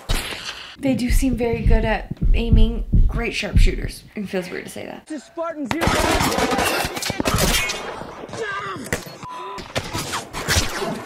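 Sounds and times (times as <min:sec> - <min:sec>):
shouted dialogue: 0:05.0 - 0:07.3, 0:08.2 - 0:09.1.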